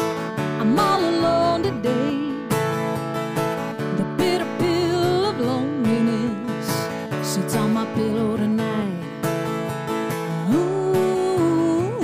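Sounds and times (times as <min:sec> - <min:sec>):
strummed acoustic guitar: 0:00.0 - 0:12.0
woman singing country-rock song: 0:00.0 - 0:12.0.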